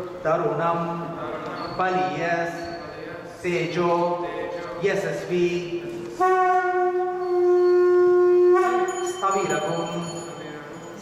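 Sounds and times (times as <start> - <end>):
conch shell blown: 6.1 - 9.3.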